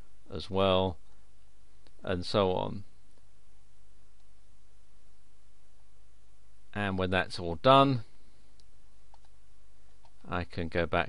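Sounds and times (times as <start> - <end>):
low hum of room tone: 0.0 - 11.0
computer mouse clicks: 8.5 - 10.3.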